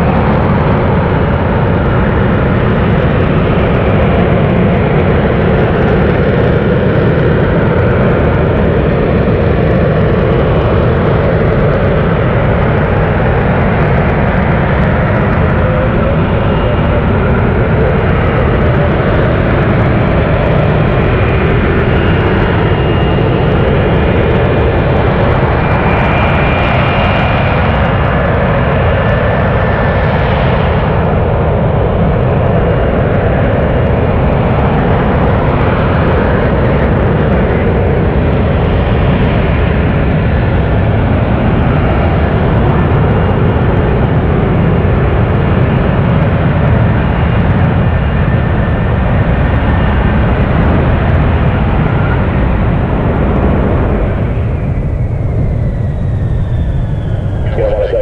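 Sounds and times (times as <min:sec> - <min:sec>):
jet roar: 0:00.0 - 0:58.0
faint high whine: 0:56.2 - 0:58.0.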